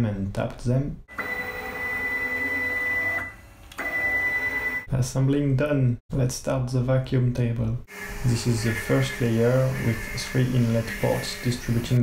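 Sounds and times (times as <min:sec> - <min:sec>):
stepper motor whine: 0:07.9 - 0:12.0.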